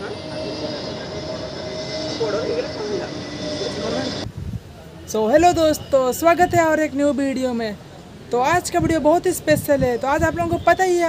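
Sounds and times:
jet airliner flying overhead: 0.0 - 8.3.

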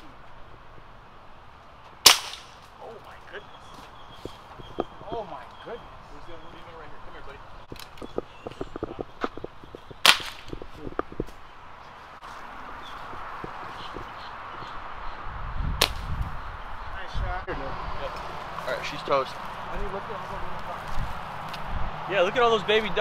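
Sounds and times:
air rifle crack: 2.0 - 2.7, 10.0 - 10.7.

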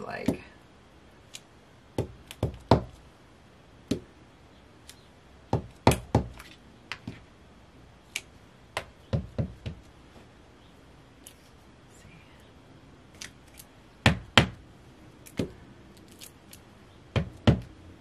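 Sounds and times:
rubber stamp knocking on paper: 5.5 - 6.4, 8.8 - 9.8, 14.0 - 14.6, 17.2 - 17.7.

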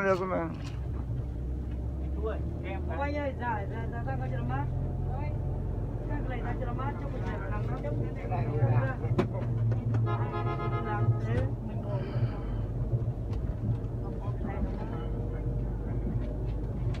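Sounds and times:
bus engine drone: 0.0 - 17.0
people talking: 14.0 - 15.4.

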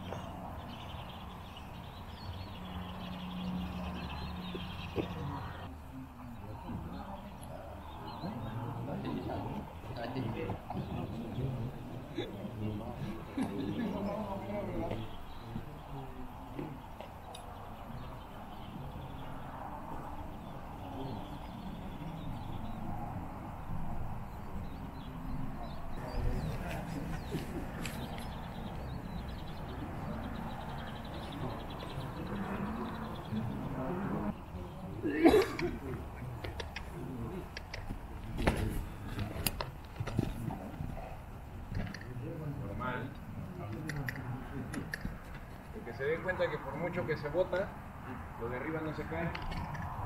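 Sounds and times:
murmur of distant voices: 0.0 - 50.0
hooves thudding on sand: 16.5 - 33.6, 36.2 - 41.6.

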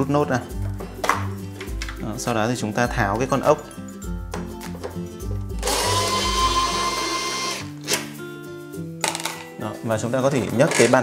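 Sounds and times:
electric screwdriver whine: 5.6 - 7.7.

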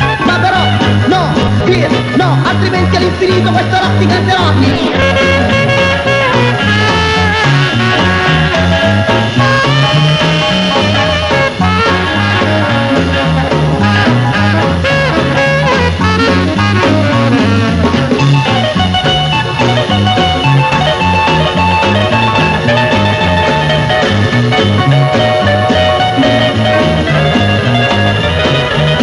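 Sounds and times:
electric guitar: 0.0 - 29.0
rock and roll band playing: 0.0 - 29.0
upright bass line: 0.0 - 29.0
saxophone: 3.6 - 29.0.

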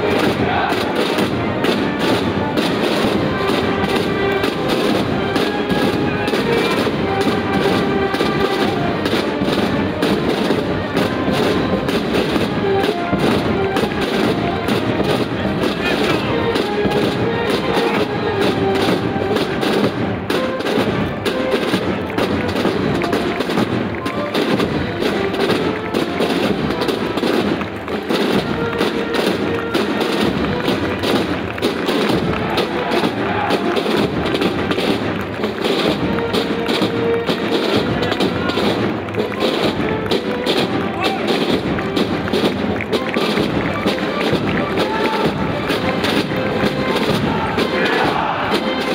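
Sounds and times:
military march music with drums: 0.0 - 48.9.

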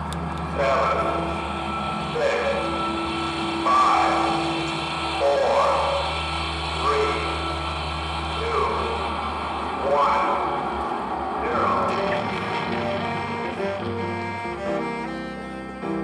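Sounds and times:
marching band playing softly: 0.0 - 16.0.

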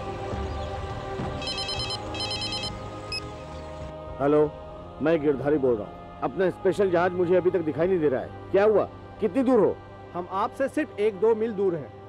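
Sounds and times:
film music: 0.0 - 12.0
trilling telephone ringtone: 1.4 - 3.2.

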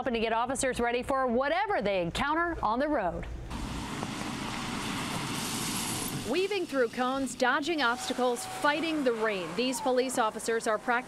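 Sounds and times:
tyres on wet pavement: 3.5 - 7.1.

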